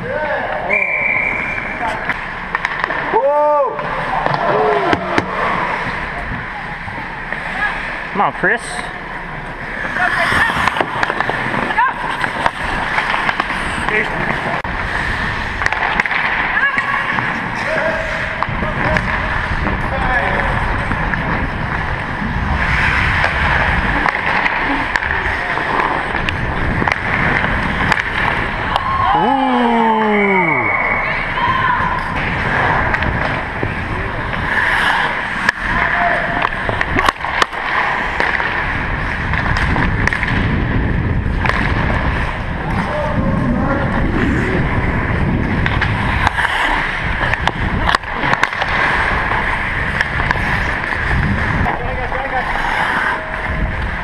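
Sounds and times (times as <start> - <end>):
players' voices: 0.0 - 54.0
skate blades scraping ice: 0.1 - 54.0
stick and puck clacks: 1.6 - 6.5, 9.3 - 30.8, 31.9 - 54.0
microphone movement rumble: 8.8 - 30.4, 31.0 - 54.0.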